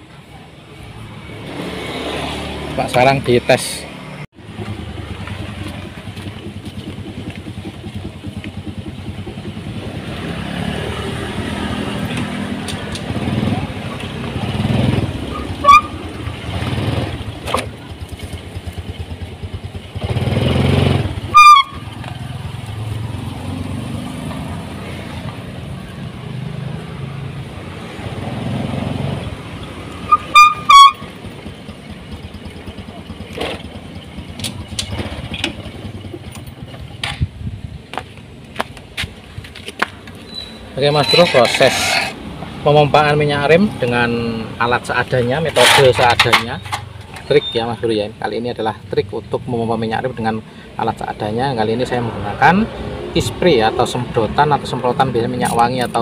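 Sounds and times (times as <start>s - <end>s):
motorcycle engine revving: 1.1s - 38.0s
high-pitched brake squeals: 15.3s - 16.2s, 30.0s - 31.2s, 40.2s - 42.2s, 45.6s - 47.8s.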